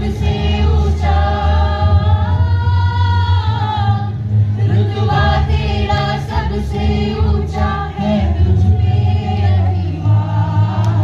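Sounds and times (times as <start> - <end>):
group singing into microphone: 0.0 - 11.0
steady low drone: 0.0 - 11.0.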